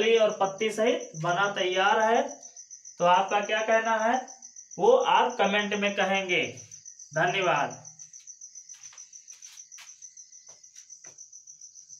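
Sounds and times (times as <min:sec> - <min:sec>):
cricket chirping: 0:00.0 - 0:11.9.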